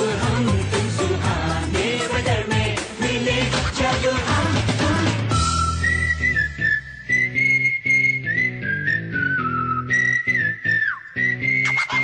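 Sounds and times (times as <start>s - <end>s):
whistled melody: 5.2s - 12.0s.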